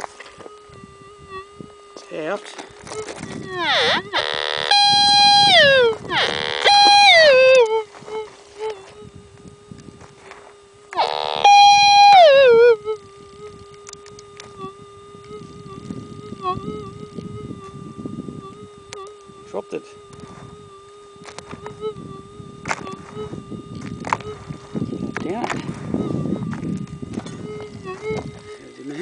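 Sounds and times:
metal detector threshold hum: 0:00.0 - 0:29.0
metal detector target signals: 0:02.9 - 0:08.8, 0:11.0 - 0:12.8.

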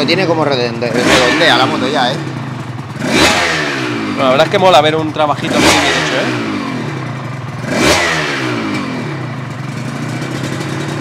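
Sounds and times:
two-stroke motorcycle engine revving: 0:00.0 - 0:11.0.

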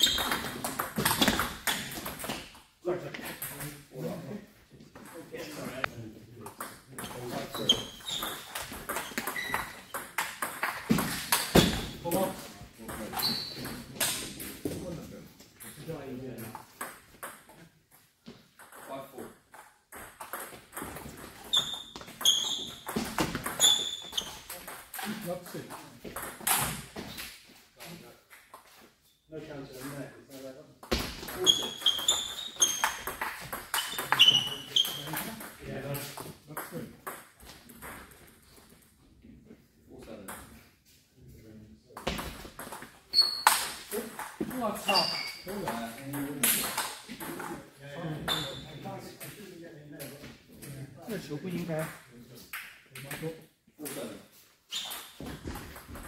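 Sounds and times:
shoes squeaking on floor: 0:00.0 - 0:02.6, 0:07.0 - 0:14.9, 0:20.4 - 0:25.2, 0:30.9 - 0:35.5, 0:42.1 - 0:45.8, 0:48.1 - 0:48.9, 0:54.6 - 0:56.0.

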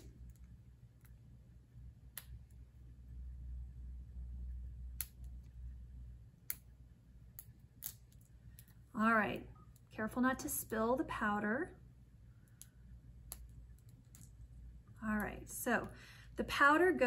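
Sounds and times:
small plastic clicks and snaps: 0:07.4 - 0:08.8, 0:12.4 - 0:14.4.

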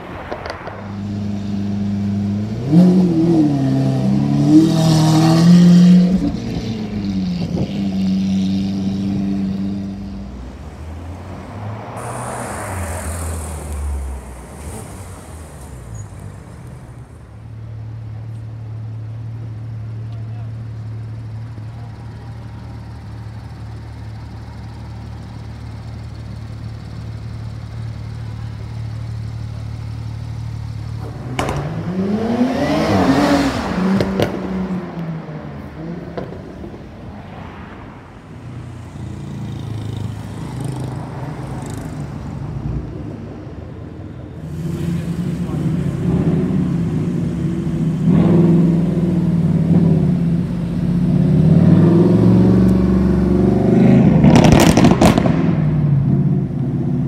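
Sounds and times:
car engine revving: 0:00.0 - 0:17.5, 0:21.1 - 0:36.7, 0:44.5 - 0:57.0
car accelerating: 0:00.0 - 0:37.6, 0:44.4 - 0:57.0
passing vehicle: 0:00.0 - 0:57.0
car engine idling: 0:09.9 - 0:31.6.

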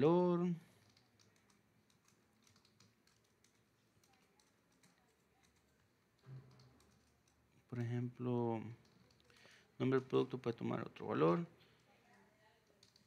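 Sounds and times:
keyboard typing: 0:00.6 - 0:07.6, 0:12.6 - 0:13.0.

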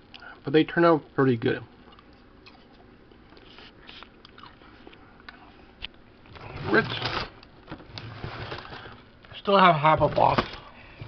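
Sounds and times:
person chewing fries: 0:01.8 - 0:06.1.

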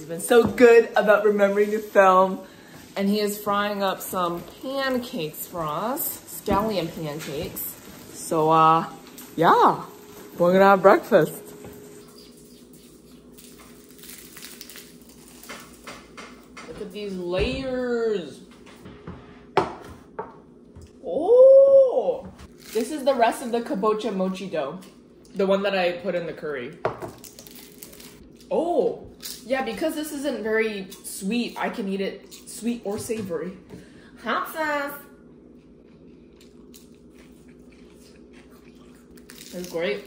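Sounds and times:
low room hum: 0:00.0 - 0:40.0.

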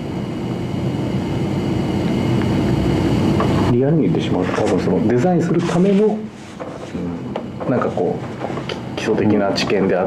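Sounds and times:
mechanical low rumble: 0:00.0 - 0:10.0.

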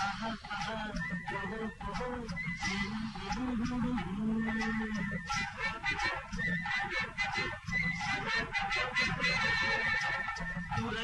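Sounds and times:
instrumental film music: 0:00.0 - 0:11.0.

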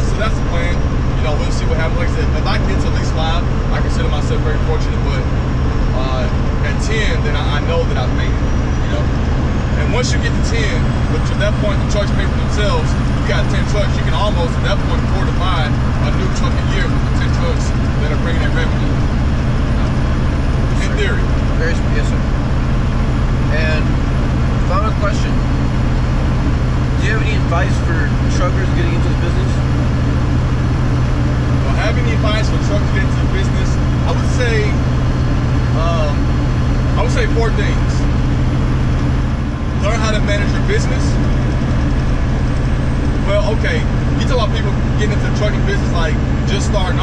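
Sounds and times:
truck engine and road drone: 0:00.0 - 0:47.0.

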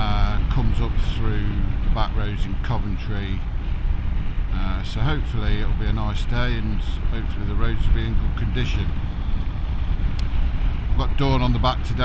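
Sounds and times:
motorcycle engine and tyres rumbling: 0:00.0 - 0:12.0
wind rushing over microphone: 0:00.0 - 0:12.0.

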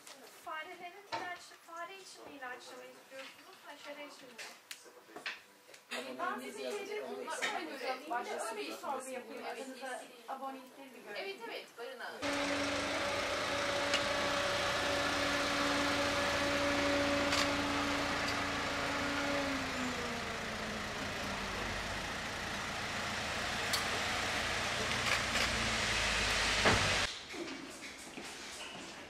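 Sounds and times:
vehicle engine running: 0:12.2 - 0:27.1.

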